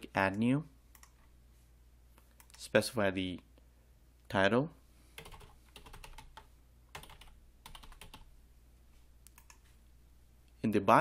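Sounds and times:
typing on computer keyboard: 5.2 - 8.3, 9.3 - 9.6.

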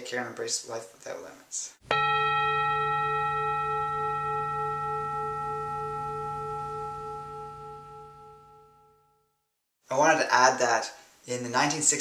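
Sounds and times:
steady low hum: 1.9 - 8.8
struck bell ringing: 1.9 - 9.1.

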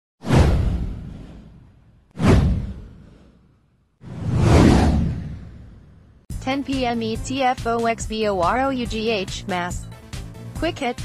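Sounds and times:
deep whoosh effect: 0.2 - 6.3.

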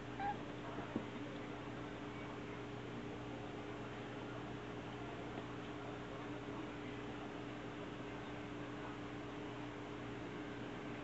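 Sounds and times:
low room hum: 0.0 - 11.0
kitten meowing softly: 0.1 - 0.4.

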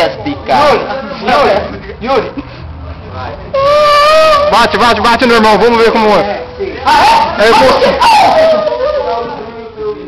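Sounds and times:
young men crying out: 3.5 - 5.1, 6.8 - 9.6
howl-like falling call: 3.6 - 4.8, 6.9 - 9.5.

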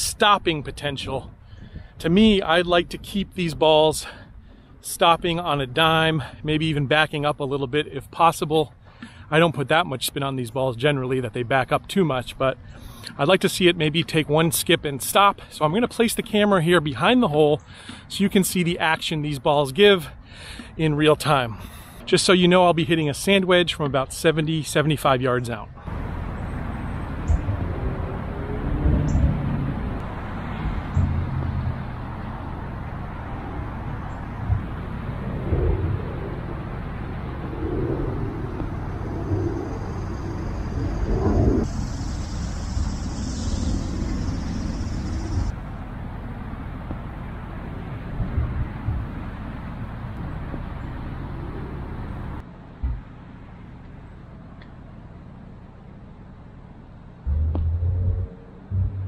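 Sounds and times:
outdoor rumble: 25.8 - 47.2, 57.2 - 59.0
soft thumps: 57.3 - 59.0.

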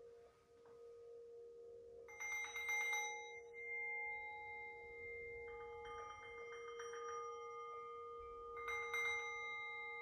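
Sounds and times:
singing bowl low tone: 0.0 - 10.0.

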